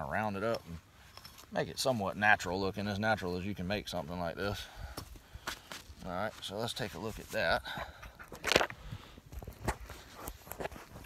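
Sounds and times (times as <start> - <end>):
rustling scrape on sandy ground: 5.5 - 7.6.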